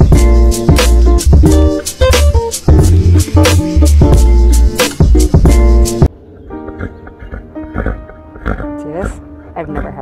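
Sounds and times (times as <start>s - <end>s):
quiet background music: 6.1s - 10.0s
horse snuffling: 6.8s - 10.0s.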